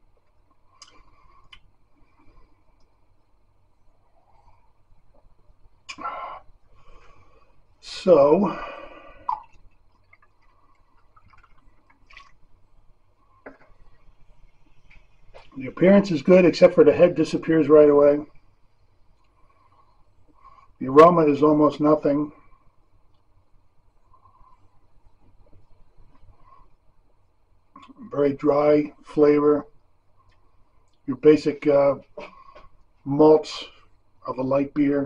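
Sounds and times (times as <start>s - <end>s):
low steady hum: 0.0s - 35.0s
man sipping and swallowing beer: 0.1s - 3.0s, 8.5s - 12.5s
beer pouring and fizzing: 8.6s - 14.2s.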